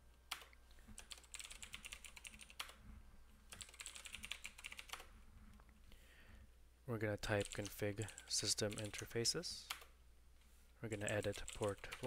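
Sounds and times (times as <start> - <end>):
computer keyboard typing: 0.3 - 2.8, 3.5 - 5.1, 7.3 - 9.1, 11.0 - 12.0.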